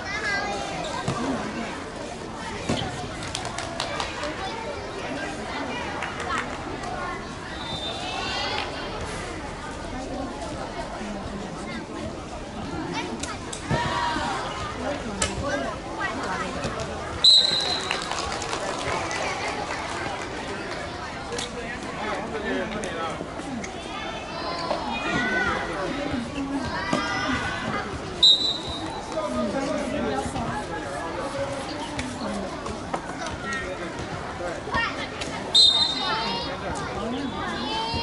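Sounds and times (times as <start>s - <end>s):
young voices calling and chattering: 0.0s - 38.0s
sports whistle blown: 7.6s - 8.1s, 17.2s - 17.9s, 28.2s - 28.8s, 35.5s - 36.2s.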